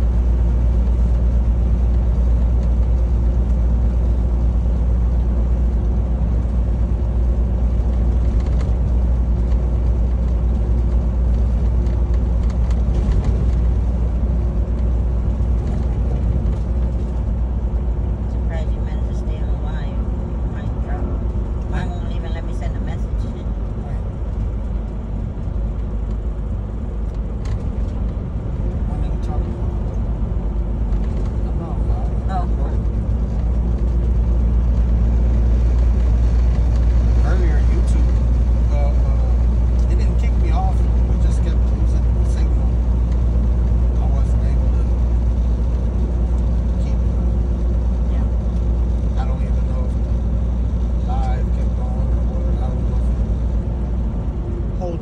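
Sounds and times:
truck diesel engine drone: 0.0s - 55.0s.

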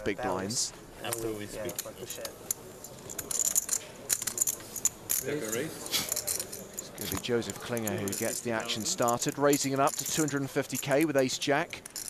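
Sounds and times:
poker chips clicking: 1.1s - 12.0s.

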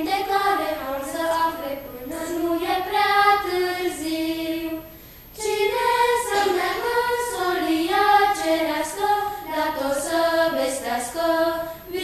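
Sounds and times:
children singing a hymn: 0.0s - 12.0s.

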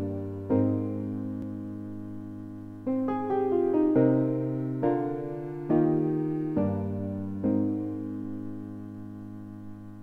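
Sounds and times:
piano chord: 0.0s - 10.0s.

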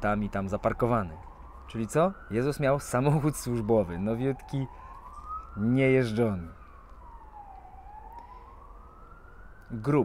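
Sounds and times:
faint emergency siren wailing: 0.0s - 10.0s.

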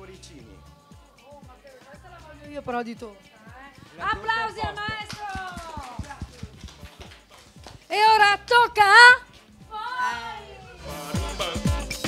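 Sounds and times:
people clapping: 3.8s - 8.0s.

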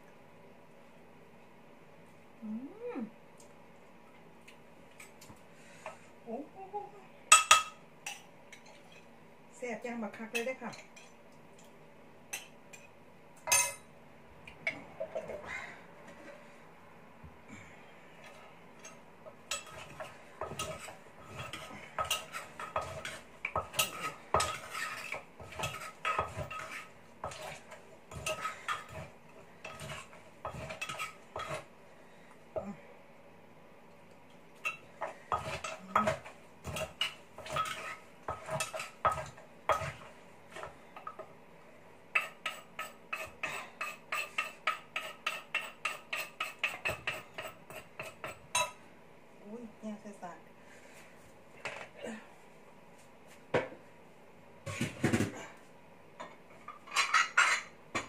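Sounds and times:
woman humming mmm: 2.4s - 3.2s
pestle pounding in a mortar: 35.3s - 40.7s.

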